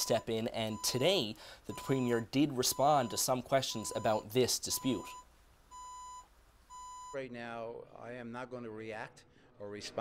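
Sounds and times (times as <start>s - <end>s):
faint electronic beeps: 0.0s - 7.3s.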